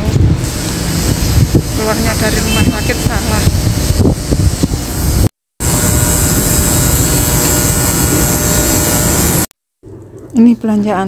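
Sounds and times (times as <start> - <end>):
wind on microphone: 0.0 - 9.4
street traffic noise: 0.0 - 11.0.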